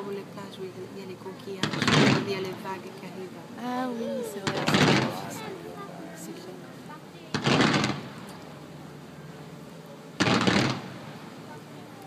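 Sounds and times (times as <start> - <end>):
firework salvos: 4.4 - 5.3, 7.3 - 8.3, 10.2 - 11.3.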